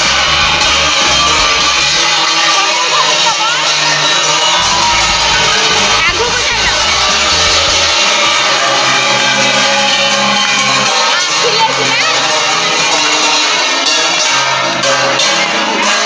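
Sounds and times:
children shouting: 0.0s - 16.0s
crowd cheering: 0.0s - 16.0s
loud music: 0.0s - 16.0s.

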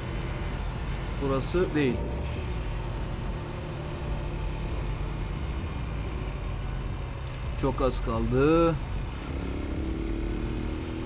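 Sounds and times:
wind and road noise: 0.0s - 11.0s
motorcycle engine cruising: 8.8s - 11.0s.

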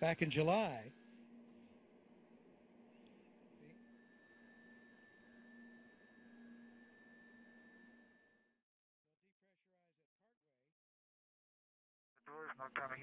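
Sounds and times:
faint high steady tone: 0.0s - 8.6s.

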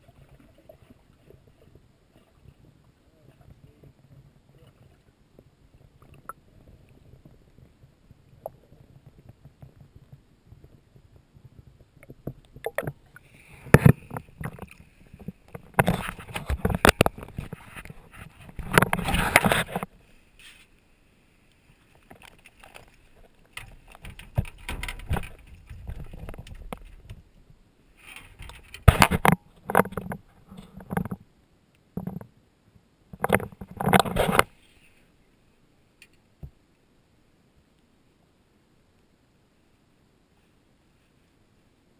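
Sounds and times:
water splashing: 0.0s - 5.2s, 12.0s - 19.8s
muffled underwater rumble: 0.0s - 20.0s.

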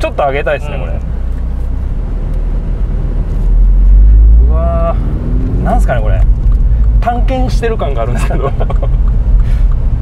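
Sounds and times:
car engine drone from cabin: 0.0s - 10.0s.

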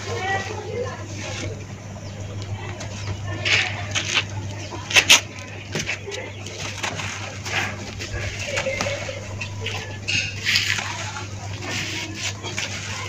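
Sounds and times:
dirt crunching and crumbling: 0.0s - 13.0s.

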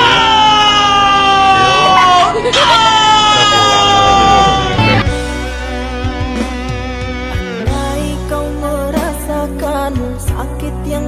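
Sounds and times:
high-pitched voice wailing: 0.0s - 5.0s.

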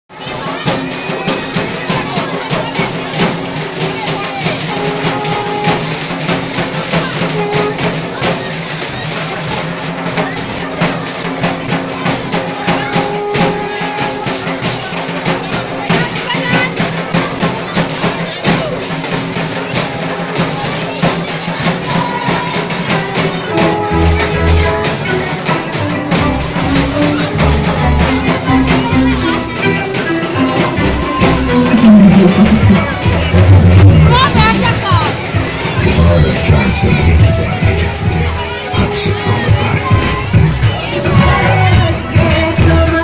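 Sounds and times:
crowd voices: 0.0s - 43.0s
fast festival drumming: 0.1s - 43.0s.

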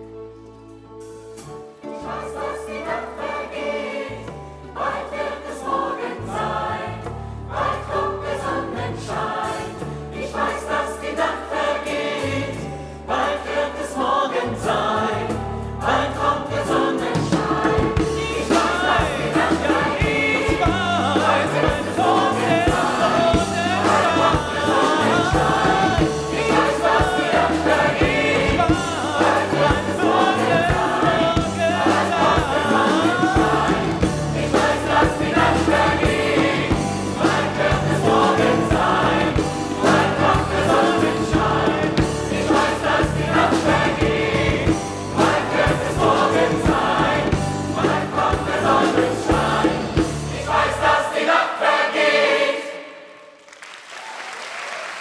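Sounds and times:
live band: 0.0s - 5.0s, 14.6s - 51.0s
choir singing: 1.8s - 53.4s
steady drum beat: 16.7s - 51.1s.

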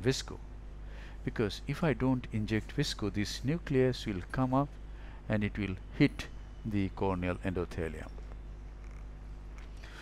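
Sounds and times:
faint background noise: 0.0s - 10.0s
steady low hum: 0.0s - 10.0s.

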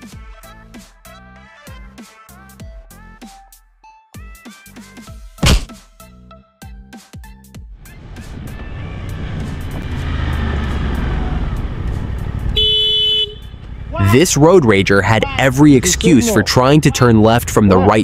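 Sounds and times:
motorcycle engine: 8.1s - 15.4s
vehicle horn toot: 12.4s - 13.6s.

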